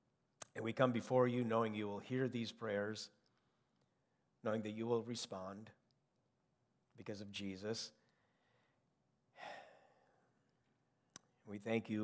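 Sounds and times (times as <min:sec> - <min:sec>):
man breathing: 0:08.0 - 0:10.4.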